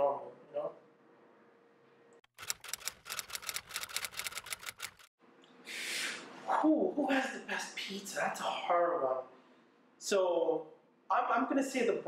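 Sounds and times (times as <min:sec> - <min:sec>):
typewriter keys clacking: 0:02.3 - 0:05.1.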